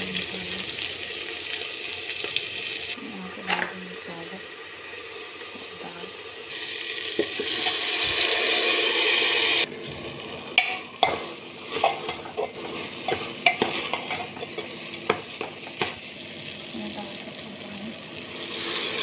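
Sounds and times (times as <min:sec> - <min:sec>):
food sizzling in hot oil: 0:00.0 - 0:19.0
metal ladle scraping a pot: 0:10.6 - 0:14.7.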